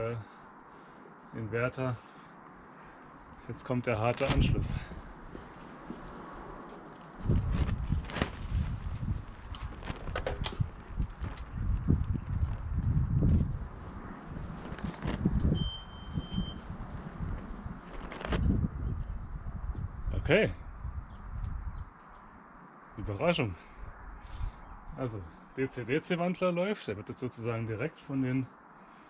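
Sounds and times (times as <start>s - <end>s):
footsteps: 4.9s - 13.6s
high-pitched whine: 10.6s - 29.0s
brief beep: 15.5s - 16.6s.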